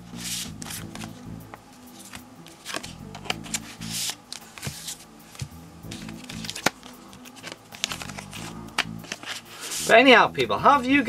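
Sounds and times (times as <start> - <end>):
quiet background music: 0.0 - 11.0
cards sliding into plastic sleeves: 0.1 - 9.9.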